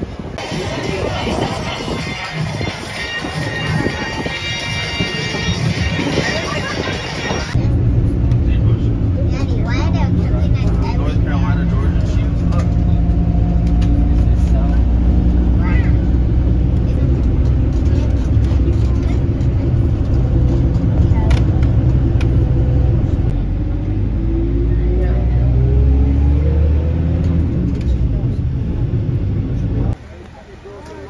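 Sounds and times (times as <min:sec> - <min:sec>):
bus engine and road drone: 0:00.0 - 0:31.0
indistinct voices talking: 0:00.4 - 0:31.0.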